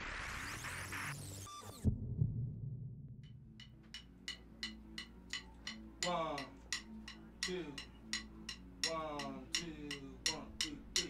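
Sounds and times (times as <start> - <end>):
low hum: 1.8 - 5.0.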